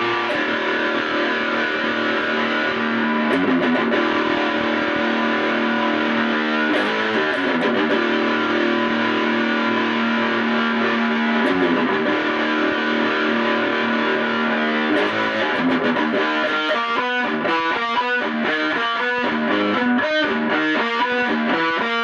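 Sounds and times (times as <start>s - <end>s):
distorted electric guitar chords: 0.0s - 22.0s.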